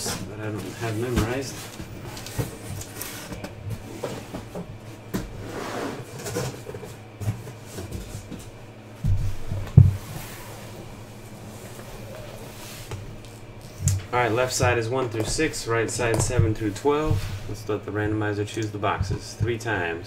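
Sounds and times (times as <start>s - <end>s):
boxes knocking and rustling: 0.0s - 19.8s.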